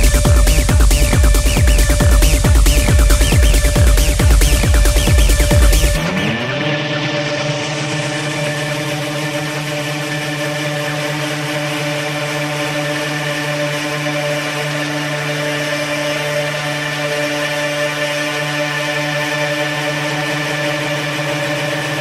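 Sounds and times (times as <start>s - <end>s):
low synthesizer drone: 0.0s - 22.0s.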